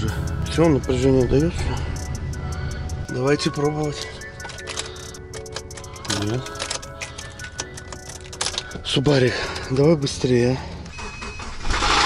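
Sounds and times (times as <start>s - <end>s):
car starter clicking: 0.2s - 12.0s.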